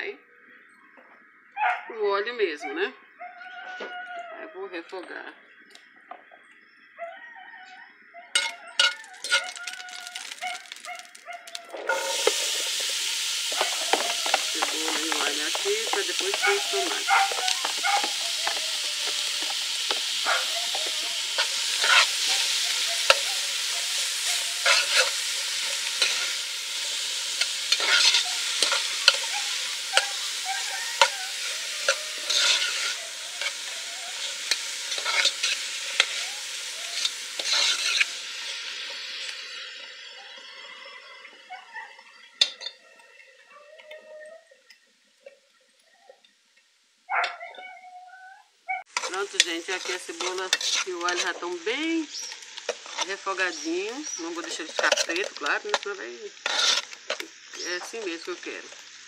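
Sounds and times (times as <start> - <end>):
onion sizzling in oil: 8.0 - 47.4, 48.7 - 59.0
metal spoon scraping a pot: 8.4 - 11.0, 11.6 - 39.8, 48.9 - 51.5, 54.3 - 57.3.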